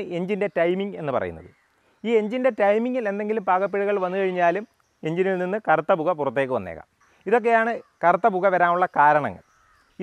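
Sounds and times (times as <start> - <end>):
man talking: 0.0 - 9.4.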